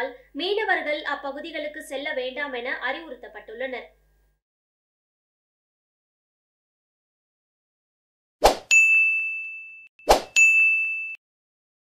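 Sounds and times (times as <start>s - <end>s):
notification bell chime: 8.7s - 11.2s.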